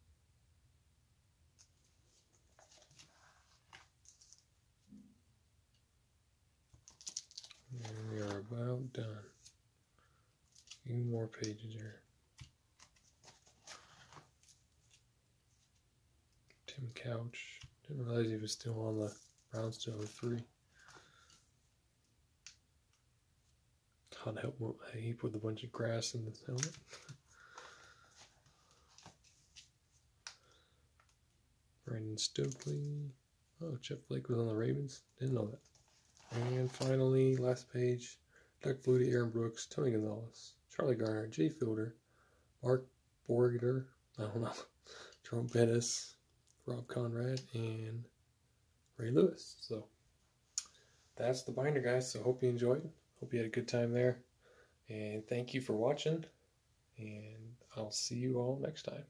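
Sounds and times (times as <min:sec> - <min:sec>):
plastic sleeves clicking and rustling: 0:01.6 - 0:04.5, 0:06.7 - 0:08.5, 0:10.4 - 0:11.6, 0:12.3 - 0:15.1, 0:26.5 - 0:30.4, 0:32.4 - 0:32.8, 0:35.5 - 0:37.4
plastic pages crinkling: 0:06.7 - 0:08.5, 0:12.4 - 0:15.0, 0:35.6 - 0:37.4.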